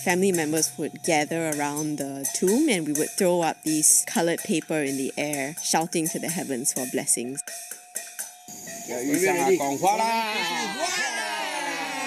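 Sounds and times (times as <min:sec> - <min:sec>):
group of people shouting: 0:09.2 - 0:12.0.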